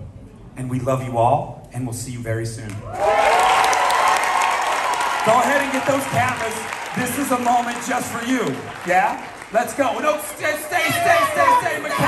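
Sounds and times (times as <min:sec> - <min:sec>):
audience cheering: 0:02.9 - 0:12.0
audience applauding: 0:03.0 - 0:12.0.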